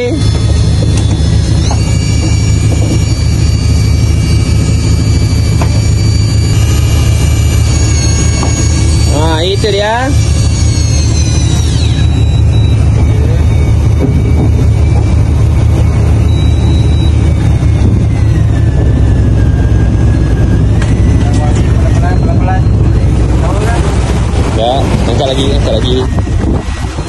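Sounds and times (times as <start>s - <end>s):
boat engine humming: 0.0s - 27.0s
sea noise: 0.0s - 27.0s
wind on microphone: 0.0s - 27.0s.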